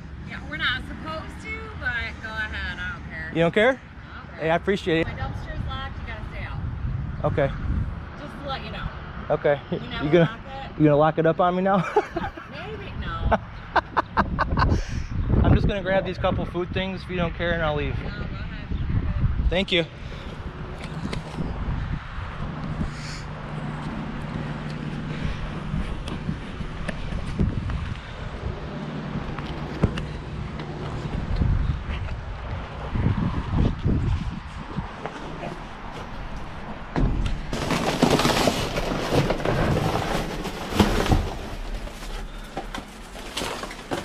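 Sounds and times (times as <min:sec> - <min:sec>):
plastic crinkling and rustling: 0:37.2 - 0:44.0.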